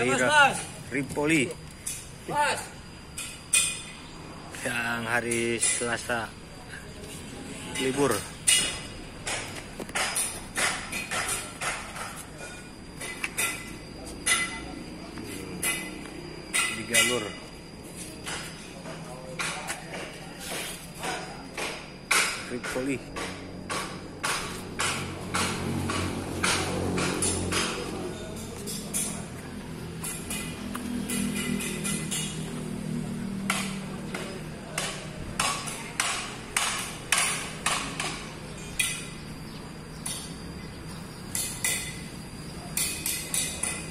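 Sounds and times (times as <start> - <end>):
metallic hammer knocks and clinks: 7.8 - 14.8, 21.0 - 29.4, 30.0 - 32.6, 33.4 - 39.3, 41.3 - 42.1, 42.7 - 43.9.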